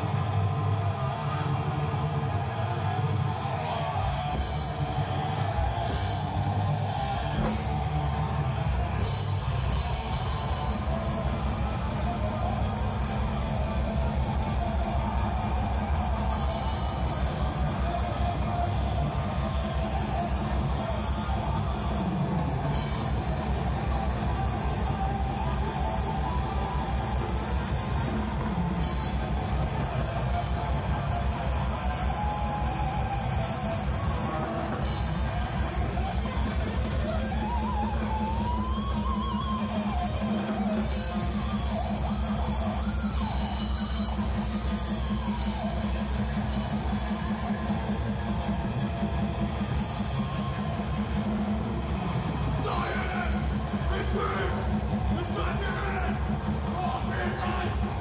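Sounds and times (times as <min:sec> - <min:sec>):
bass guitar: 0:00.0 - 0:58.0
distorted electric guitars: 0:00.0 - 0:58.0
fast drumming: 0:07.2 - 0:58.0.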